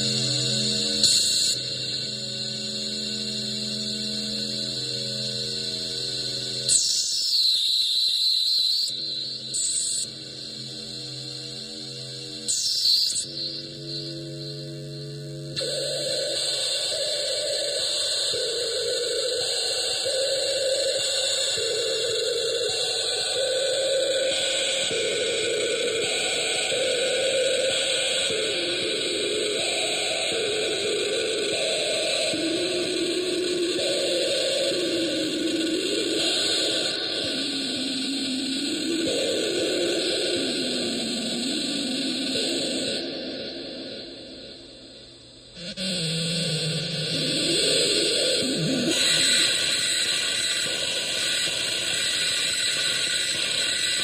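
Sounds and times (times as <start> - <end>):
wavering electronic tone: 0.0 - 7.4.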